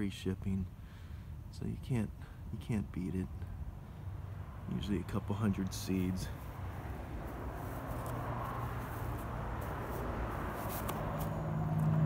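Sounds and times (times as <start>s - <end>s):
motor vehicle engine hum: 2.2s - 12.0s.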